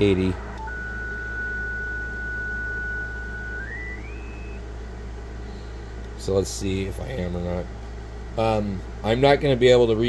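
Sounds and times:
radio band noise and hum: 0.0 - 4.7
radio carrier whistle: 0.6 - 4.7.

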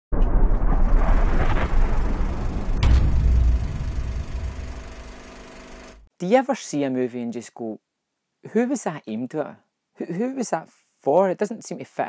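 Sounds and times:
loud deep rumble: 0.2 - 5.4
sharp hit: 0.2 - 5.4
low steady hum: 1.5 - 6.1.

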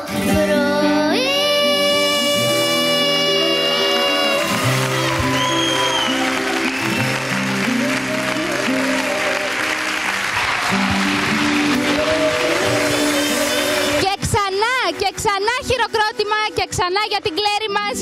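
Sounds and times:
child singing held note: 1.1 - 4.5
audience applauding: 3.3 - 14.1.

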